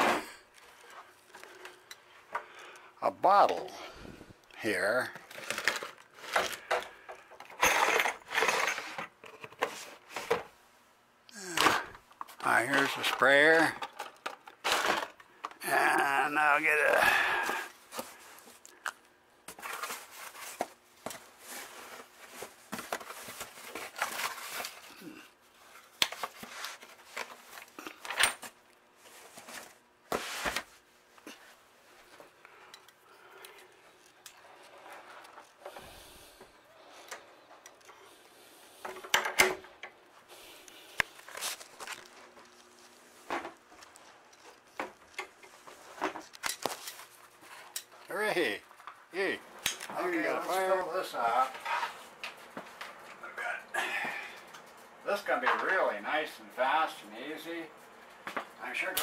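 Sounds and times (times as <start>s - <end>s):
rummaging through drawers and boxes: 5.1s - 10.5s, 12.6s - 15.2s, 19.5s - 25.0s.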